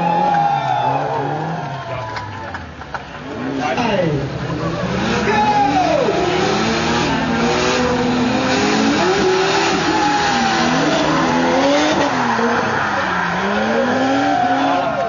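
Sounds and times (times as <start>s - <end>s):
car engines revving: 0.0s - 15.0s
tyres skidding on wet track: 4.4s - 15.0s.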